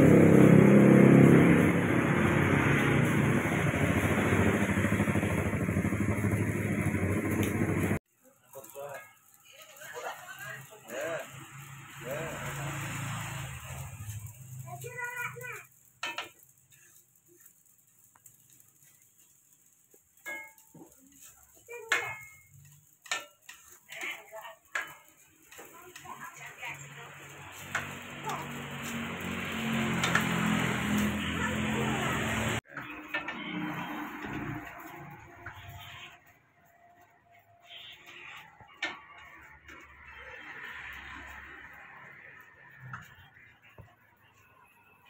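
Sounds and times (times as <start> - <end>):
sizzling: 0.0 - 45.0
metal spatula scraping wok: 8.5 - 43.9.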